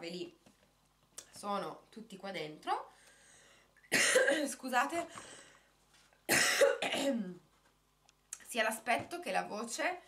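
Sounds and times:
woman coughing: 3.9s - 4.6s, 6.3s - 7.4s.

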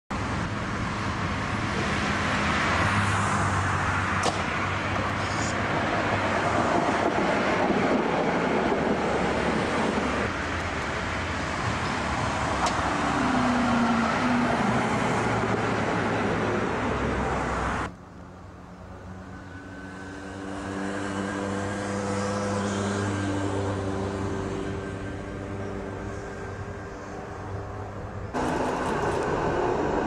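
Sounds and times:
tram rumbling on rails: 0.2s - 30.0s.

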